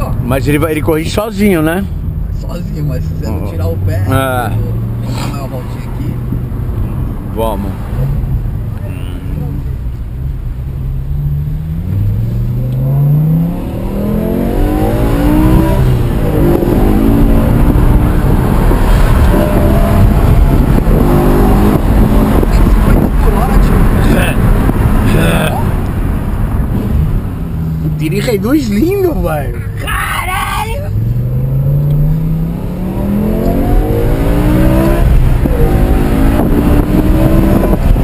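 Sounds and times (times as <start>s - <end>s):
car engine accelerating hard: 0.0s - 29.8s, 30.8s - 38.0s
road noise: 0.0s - 38.0s.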